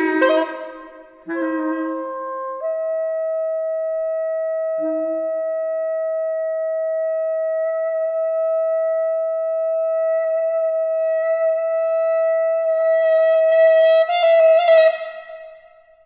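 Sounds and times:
quick fluttering saxophone notes: 0.0s - 2.7s
saxophone quartet holding a note: 0.0s - 2.7s.

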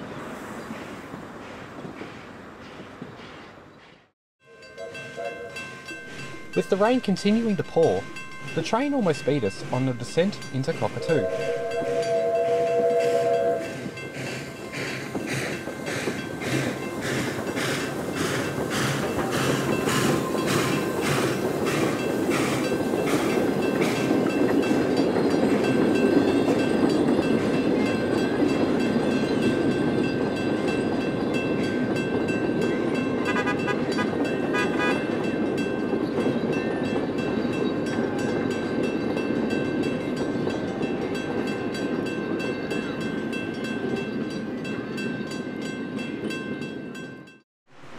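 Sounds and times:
steam locomotive passing: 0.0s - 47.9s
carriages rolling rumble: 4.6s - 47.2s
steam locomotive whistle: 10.7s - 14.7s, 33.2s - 35.0s.

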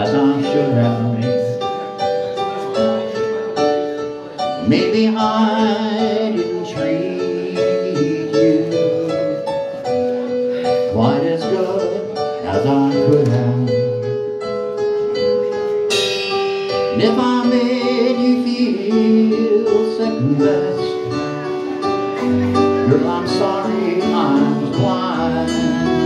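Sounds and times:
person singing: 0.0s - 1.9s, 4.5s - 14.2s, 16.7s - 26.0s
country band playing: 0.0s - 26.0s
cymbal crash: 15.9s - 17.6s.

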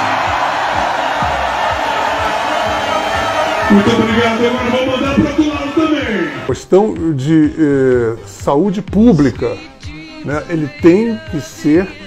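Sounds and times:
crowd cheering and shouting: 0.0s - 6.5s
music with low beat: 0.1s - 7.2s.

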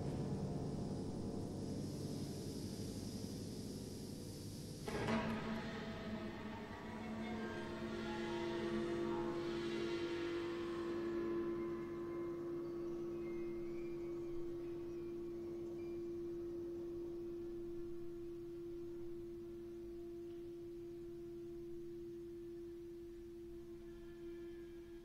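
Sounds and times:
chamber ensemble sustained tone: 0.0s - 25.0s.

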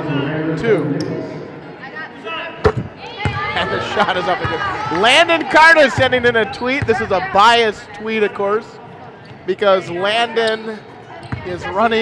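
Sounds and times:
crowd murmur: 0.0s - 9.5s.

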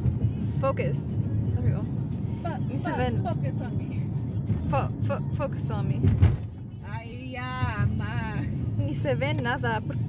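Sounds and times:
car rumbling on road: 0.0s - 10.0s
woman singing: 4.4s - 6.1s.

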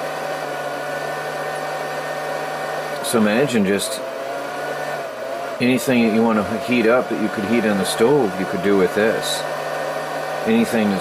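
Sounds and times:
immersion heater hum: 0.0s - 11.0s.

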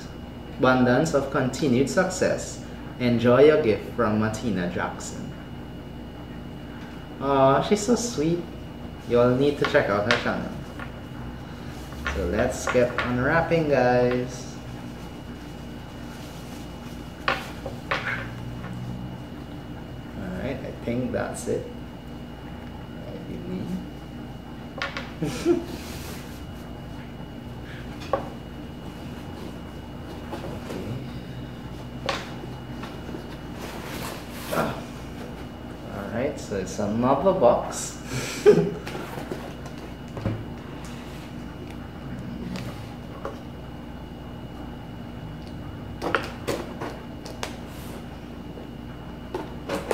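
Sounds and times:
steady low hum: 0.0s - 49.9s
plastic bag rustling: 14.7s - 17.9s.

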